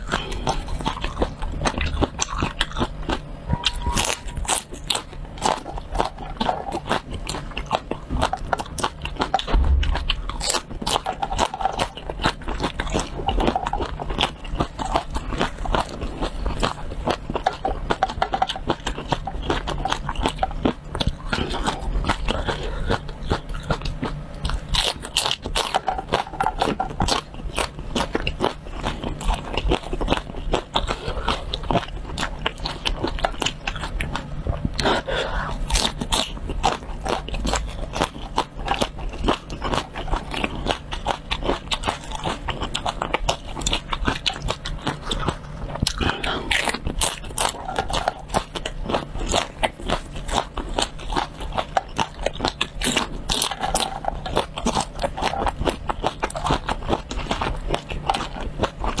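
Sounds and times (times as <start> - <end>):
crunching and chewing peppers: 0.0 - 59.0.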